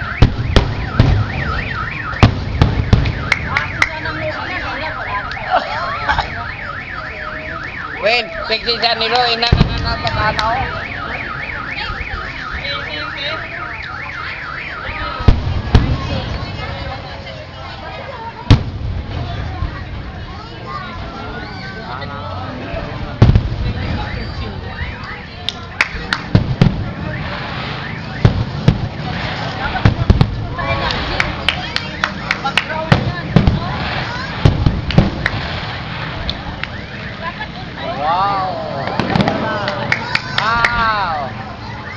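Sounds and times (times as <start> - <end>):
car alarm wailing: 0.0 - 15.3, 23.6 - 34.5, 35.3 - 39.6, 40.4 - 41.9
fireworks bangs: 0.0 - 21.8, 22.4 - 41.7.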